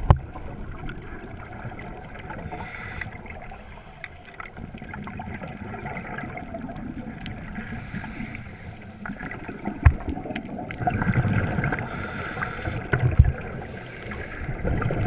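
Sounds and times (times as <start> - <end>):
burble of exhaled bubbles: 0.0 - 3.7, 4.3 - 15.0
regulator hissing inhale: 2.5 - 4.5, 7.6 - 9.8, 11.8 - 12.9, 13.6 - 14.6.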